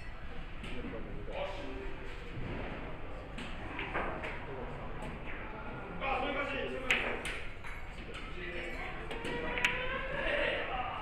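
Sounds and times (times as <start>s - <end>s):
voices murmuring in a hall: 0.0s - 11.0s.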